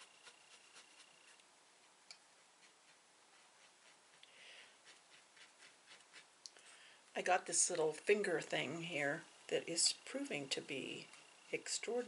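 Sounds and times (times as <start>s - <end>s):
soft rustle: 0.0s - 9.1s.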